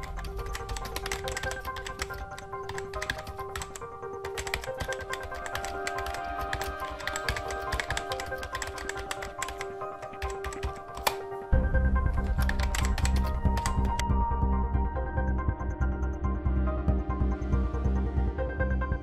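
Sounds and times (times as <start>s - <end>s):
keyboard typing clicks: 0.0s - 14.0s
background music with held tones: 0.0s - 19.0s.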